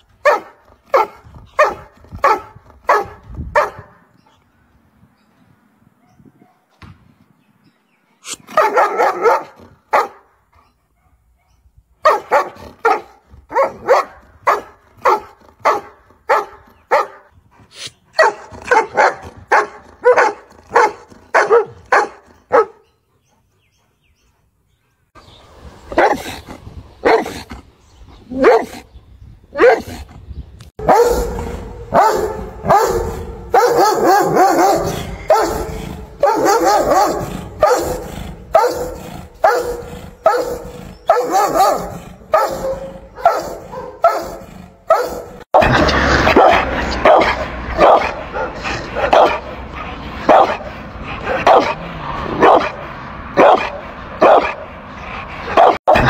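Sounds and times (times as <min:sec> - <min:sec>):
dogs barking aggressively: 0:00.0 - 0:04.3, 0:08.3 - 0:17.4, 0:18.1 - 0:23.3, 0:25.8 - 0:28.9, 0:29.5 - 0:56.0.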